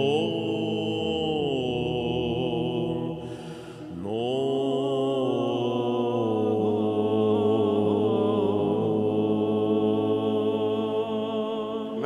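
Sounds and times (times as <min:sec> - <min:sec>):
held vocal drone: 0:00.0 - 0:12.0.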